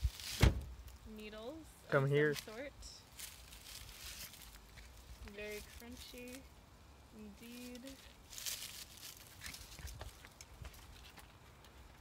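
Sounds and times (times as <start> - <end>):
footsteps crunching on dry leaves: 0.0 - 0.6, 2.3 - 6.5, 7.4 - 12.0.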